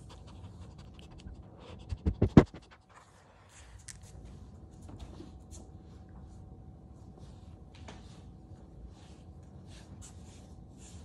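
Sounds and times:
small dog panting: 0.0 - 3.2.

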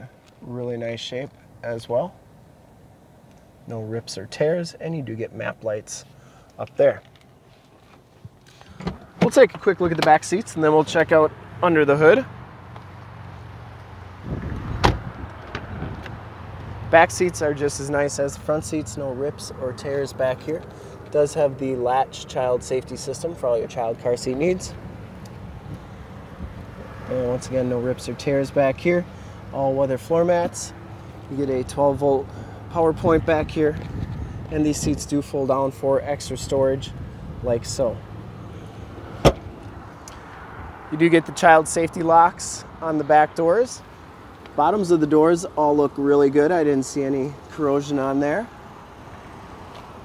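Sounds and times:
seatback latching click-thump: 8.7 - 9.4, 14.4 - 16.1, 39.2 - 39.6
car door handling rumble: 14.3 - 16.2, 39.2 - 39.6
car door latch click: 14.8 - 15.7, 39.2 - 39.5.

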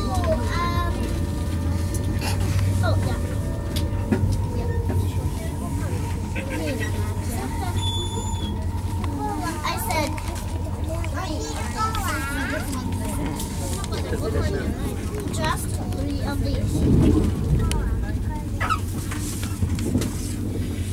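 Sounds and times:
people talking in background: 0.0 - 20.9
train rumbling inside carriage: 0.0 - 20.9.

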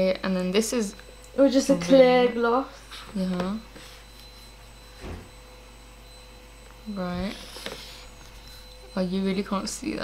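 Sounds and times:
electrical hum: 0.0 - 10.0
faint high whine: 0.0 - 10.0
low thud: 5.0 - 5.4.

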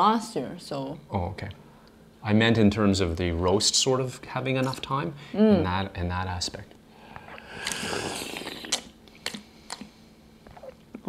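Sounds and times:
person slurping tea: 7.1 - 9.9.

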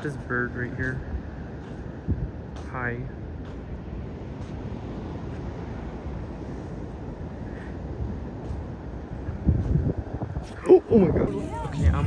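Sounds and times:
ocean surf: 0.0 - 12.0
wind buffeting microphone: 0.0 - 12.0.

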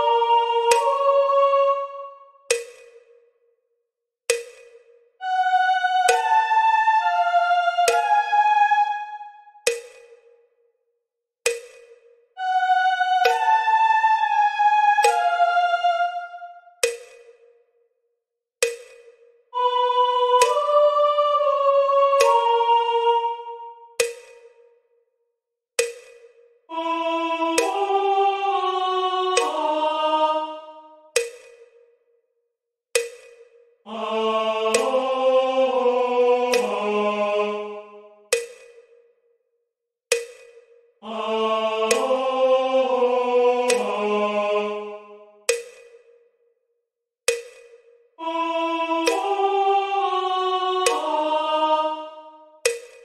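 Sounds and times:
metronome-like clicks: 0.0 - 1.2, 2.5 - 3.3, 4.3 - 7.2, 7.8 - 8.3, 9.1 - 10.5, 11.5 - 17.6, 18.6 - 21.1, 22.1 - 24.8, 25.8 - 31.9, 33.0 - 34.0, 34.6 - 35.1, 36.5 - 36.8, 37.7 - 39.1, 40.1 - 41.2, 41.8 - 42.3, 43.6 - 44.0, 44.9 - 46.3, 47.3 - 49.4, 50.8 - 51.4, 52.0 - 53.0
metronome click: 2.5 - 3.0, 6.1 - 6.3, 9.7 - 10.2, 24.0 - 24.5, 31.2 - 31.6, 38.3 - 38.8, 40.1 - 40.6, 47.3 - 47.8, 52.7 - 53.0.

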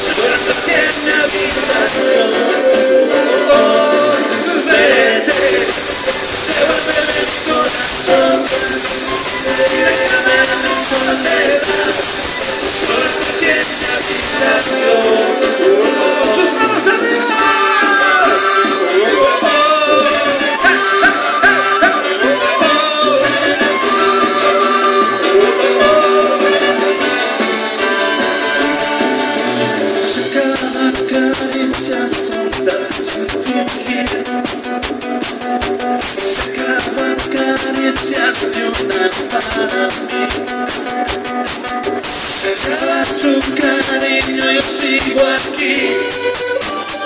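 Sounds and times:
live horn band music: 0.0 - 47.0
voices singing with band: 0.0 - 47.0
saxophone: 0.2 - 30.2.

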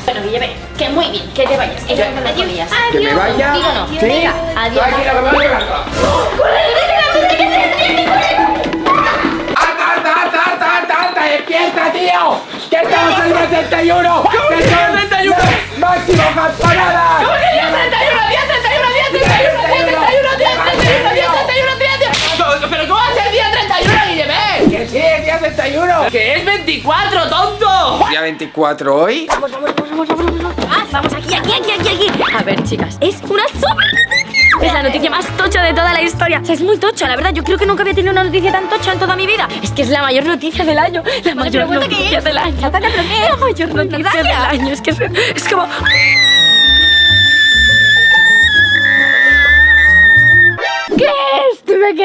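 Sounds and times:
background music with bass: 0.0 - 9.7, 12.9 - 28.4, 30.2 - 51.0
people yelling: 5.0 - 11.0, 14.4 - 22.2, 45.8 - 51.2.

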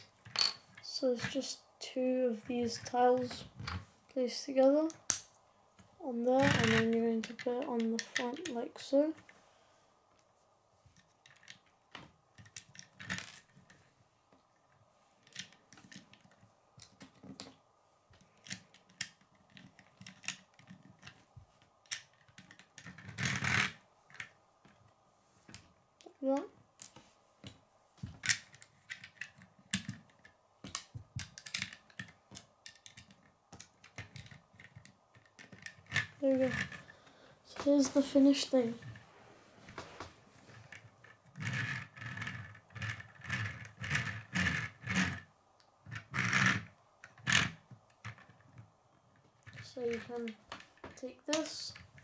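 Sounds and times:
plastic bricks clicking: 15.2 - 24.9, 28.2 - 36.9.

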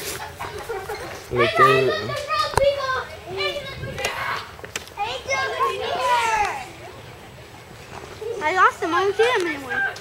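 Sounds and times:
children talking: 0.0 - 10.0.

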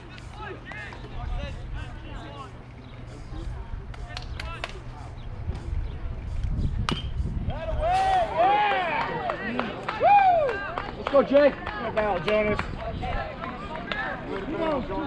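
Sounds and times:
steady low rumble: 1.1 - 8.4
young players shouting: 8.0 - 10.7.

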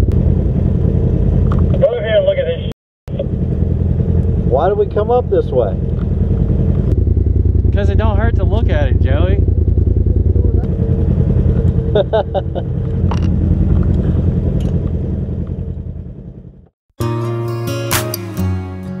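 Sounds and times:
utv engine running: 0.0 - 16.7
voices: 1.7 - 3.4, 4.5 - 5.9, 7.7 - 12.6.

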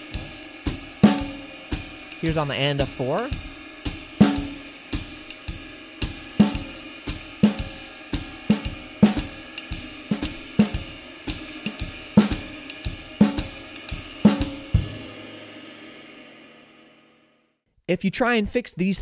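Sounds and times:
snare drum accents: 2.2 - 3.4, 4.2 - 5.4.

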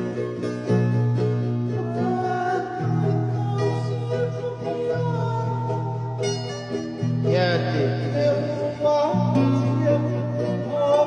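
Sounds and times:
acoustic guitars strummed: 0.0 - 11.0
man singing: 1.7 - 11.0.

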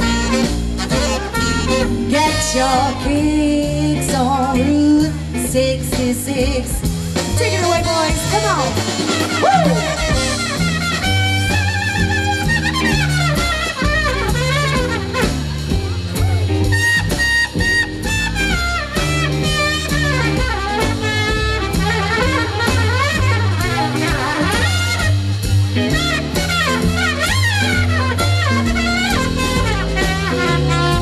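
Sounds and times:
saxophone and brass lines: 0.0 - 3.8, 7.4 - 31.0
drum kit: 0.0 - 31.0
walking upright bass: 0.0 - 31.0.

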